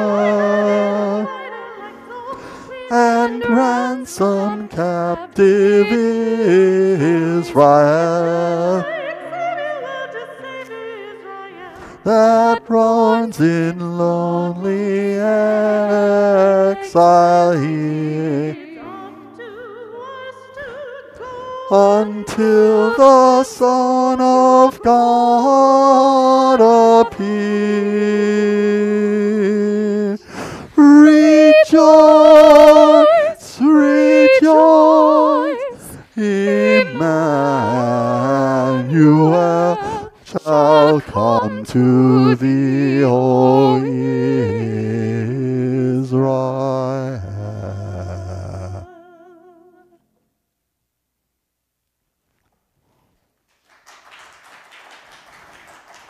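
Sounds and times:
soprano singing slow melody: 0.0s - 50.1s
singer breath: 2.3s - 2.8s, 11.7s - 12.1s, 30.2s - 30.8s.

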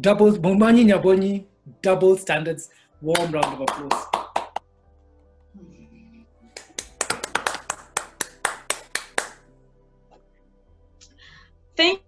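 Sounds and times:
person clapping: 3.1s - 4.7s, 6.5s - 9.4s.

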